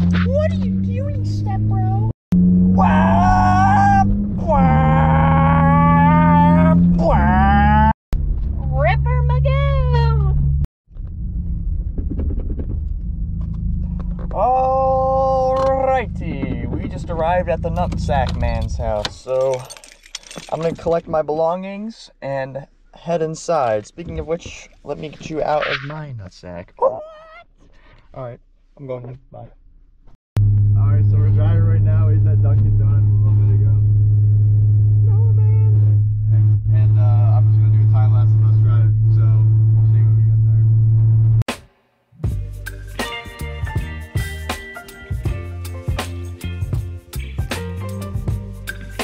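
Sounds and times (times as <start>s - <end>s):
car engine rumble inside cabin: 0.0s - 19.1s, 30.4s - 41.4s
voices talking: 0.1s - 2.1s, 24.0s - 27.4s.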